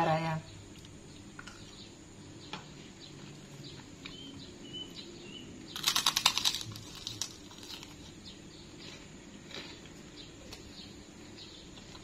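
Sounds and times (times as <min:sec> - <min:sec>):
faint bird chirps: 0:00.0 - 0:06.0
crunching of a fried cracker: 0:05.7 - 0:10.8.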